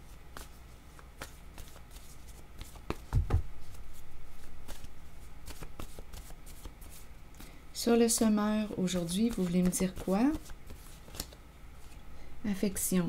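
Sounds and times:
cards being shuffled: 0:00.3 - 0:12.0.

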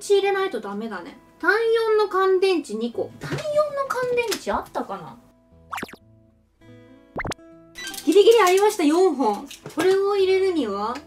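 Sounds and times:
quick rising pop: 0:05.7 - 0:06.0, 0:07.2 - 0:07.4.

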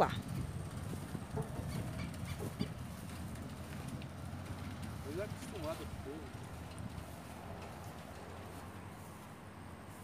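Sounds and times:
wind rumble: 0:00.0 - 0:09.9.

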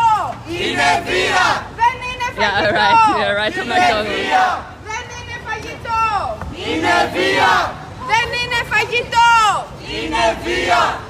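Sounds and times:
crowd chanting a slogan: 0:00.1 - 0:01.8, 0:02.4 - 0:04.8, 0:06.4 - 0:08.0, 0:09.1 - 0:11.0.

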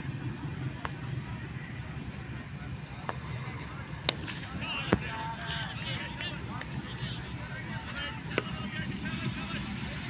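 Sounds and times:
locomotive rumble: 0:00.0 - 0:10.0.

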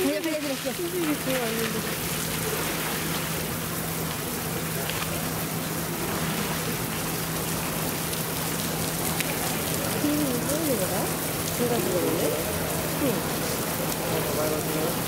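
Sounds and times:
water hissing: 0:00.0 - 0:15.0.

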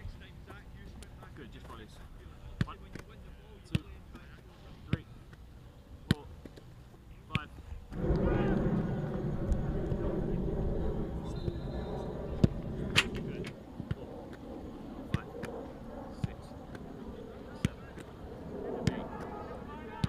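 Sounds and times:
voices: 0:07.1 - 0:20.0
football kicks: 0:12.3 - 0:14.4, 0:17.5 - 0:18.2, 0:18.8 - 0:19.3.

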